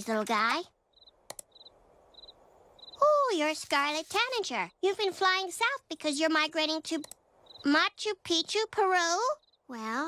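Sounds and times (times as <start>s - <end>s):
crickets chirping: 0.8s - 3.4s, 7.1s - 7.8s, 9.1s - 9.7s
sharp click: 1.2s - 1.5s.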